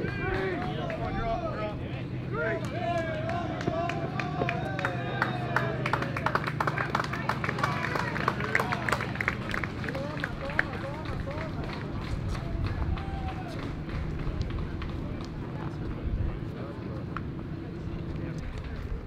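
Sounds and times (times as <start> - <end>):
low background hum: 0.0 - 19.0
players calling out and chattering: 0.0 - 19.0.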